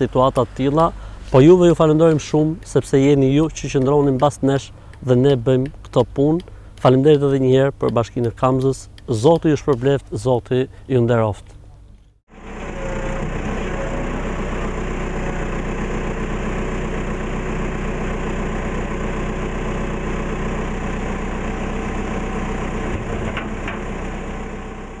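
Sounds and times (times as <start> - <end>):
backhoe diesel engine digging: 0.0 - 11.0, 11.6 - 25.0.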